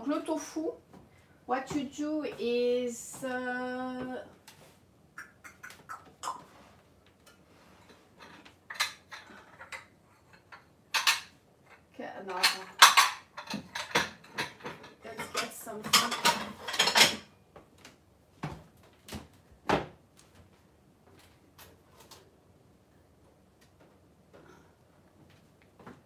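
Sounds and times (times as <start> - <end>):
crockery and utensils clattering: 7.8 - 17.3.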